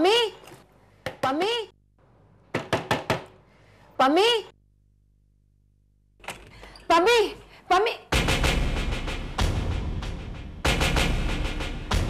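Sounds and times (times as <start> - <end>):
hand knocking on door: 2.5 - 3.3.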